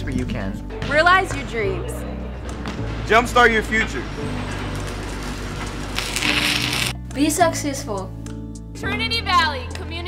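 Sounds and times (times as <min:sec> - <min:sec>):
background music with low notes: 0:00.0 - 0:10.0
welding arc crackling: 0:04.4 - 0:07.0.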